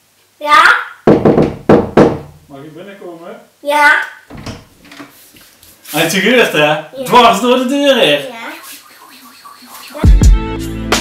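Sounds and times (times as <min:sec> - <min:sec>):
door unlatching and opening: 0:04.3 - 0:05.1.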